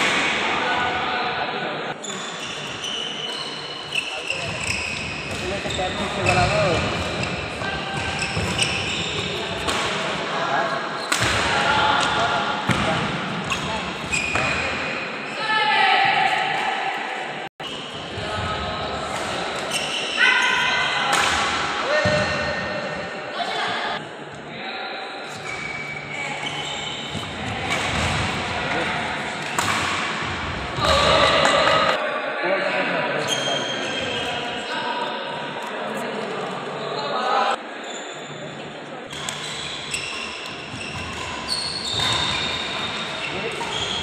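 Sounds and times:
shoes squealing on court: 2.0 - 9.5, 13.4 - 14.8, 19.6 - 20.9, 25.3 - 28.2, 39.1 - 44.0
racket hitting shuttlecock: 11.1 - 12.9, 21.1 - 21.7, 29.3 - 32.0.

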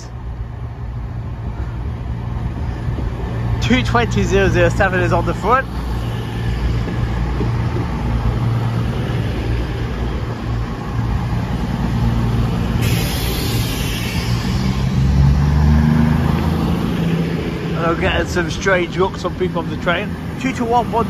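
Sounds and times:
diesel engines droning: 0.0 - 21.0
train wheels on rails: 0.9 - 21.0
high hiss: 12.5 - 15.6.

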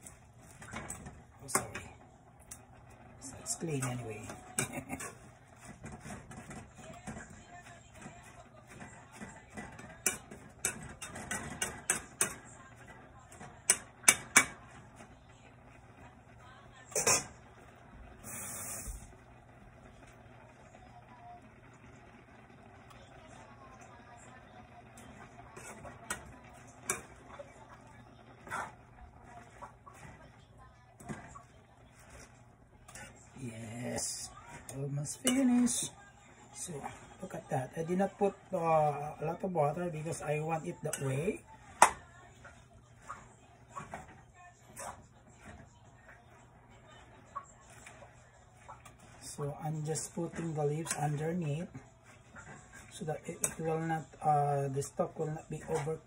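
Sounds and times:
metal ladle scraping cookware: 3.7 - 12.6, 16.9 - 17.5, 25.0 - 27.5.

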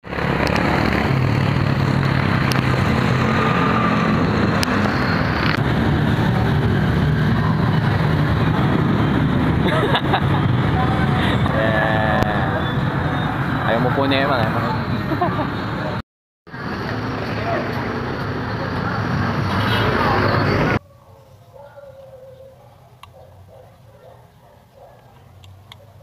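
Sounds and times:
road traffic: 0.0 - 26.0
people laughing: 9.6 - 12.4, 15.0 - 16.0
people talking: 10.7 - 16.0.

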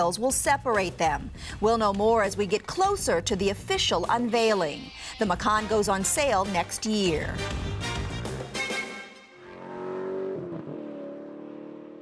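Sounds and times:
car engine: 9.4 - 12.0.

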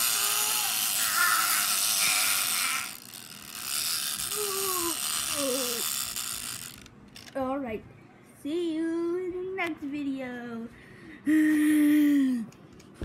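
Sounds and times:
wind-up toy whirring and rattling: 0.0 - 7.4.

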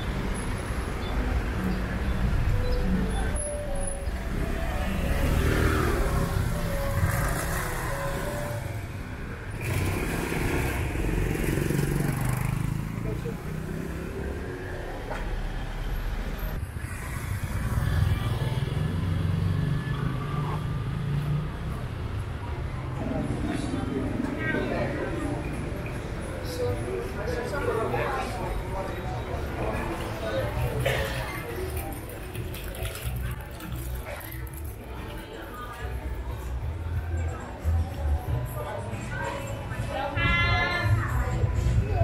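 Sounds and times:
scooters and cars passing: 0.0 - 42.0
people's voices: 11.0 - 15.8, 16.5 - 42.0.

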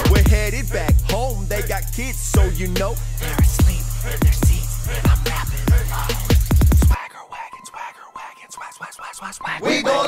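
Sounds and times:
man whispering a rap: 0.0 - 9.8.

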